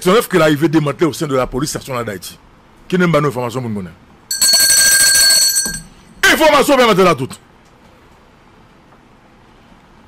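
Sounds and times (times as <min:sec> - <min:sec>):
bell-like ring: 0:04.3 - 0:06.1.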